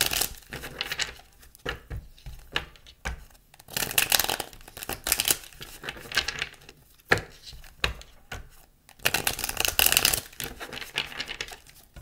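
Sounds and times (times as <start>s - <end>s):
cards tapping on wooden table: 0.5s - 3.3s, 7.1s - 8.6s.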